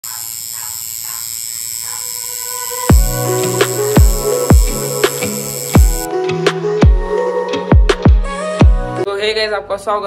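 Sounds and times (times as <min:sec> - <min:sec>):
tattoo machine whining: 0:00.0 - 0:06.1.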